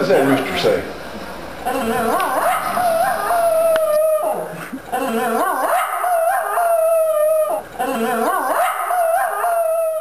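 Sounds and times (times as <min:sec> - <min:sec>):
dog howling: 0:01.7 - 0:04.6, 0:05.4 - 0:10.0.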